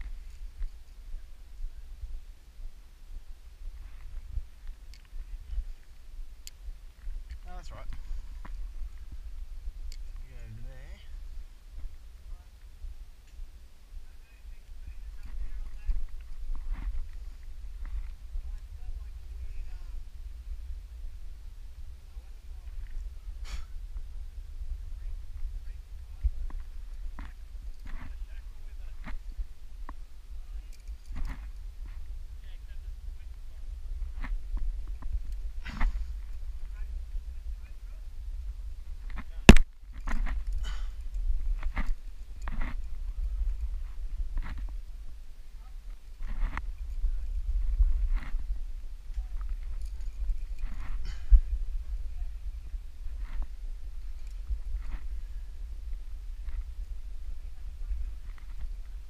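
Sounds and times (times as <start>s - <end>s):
wind rumbling on microphone: 0.0s - 59.0s
climber breathing: 7.9s - 9.0s, 35.6s - 36.5s, 40.4s - 41.2s, 49.8s - 51.6s.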